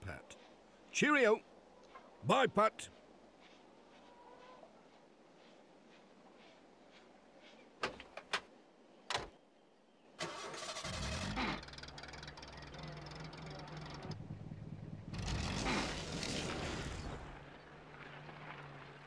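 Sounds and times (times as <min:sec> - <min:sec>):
van engine starting and running: 0:10.2 - 0:15.9.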